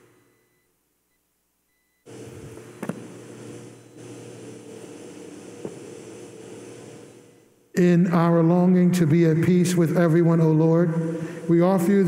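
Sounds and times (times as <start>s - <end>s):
faint room tone hum and hiss: 0.0s - 12.0s.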